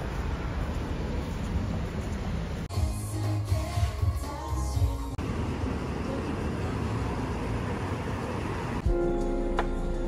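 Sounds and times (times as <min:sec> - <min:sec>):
distant traffic rush: 0:00.0 - 0:02.7, 0:05.2 - 0:08.9
music: 0:02.7 - 0:05.2, 0:08.8 - 0:10.0.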